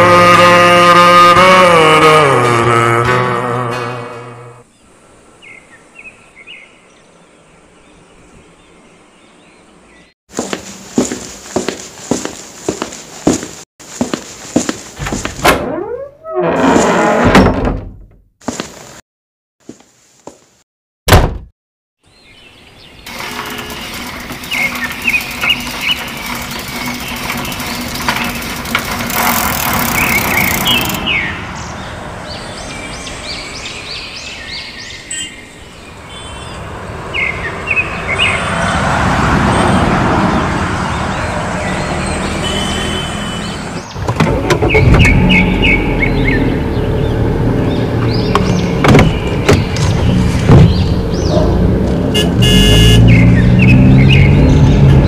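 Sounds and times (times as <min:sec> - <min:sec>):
street traffic: 0:07.3 - 0:15.4, 0:22.1 - 0:55.0
door unlatching thunk: 0:15.0 - 0:18.2
small engine running: 0:23.1 - 0:31.0
bird chirps: 0:29.8 - 0:36.6, 0:44.6 - 0:51.5
vehicle passing: 0:36.0 - 0:43.7, 0:45.1 - 0:48.8, 0:50.0 - 0:55.0.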